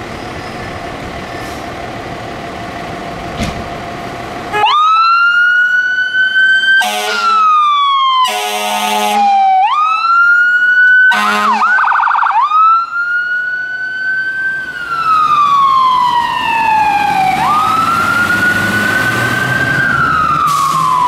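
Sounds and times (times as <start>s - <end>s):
fire engine siren wailing: 4.3s - 21.0s
air horn blasts: 6.8s - 7.5s, 8.2s - 9.4s, 11.1s - 11.8s.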